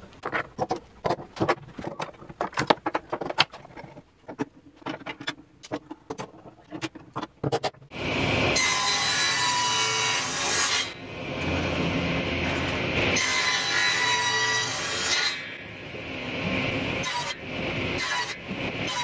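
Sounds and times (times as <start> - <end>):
table saw cutting wood: 7.9 - 15.6, 17.0 - 19.0.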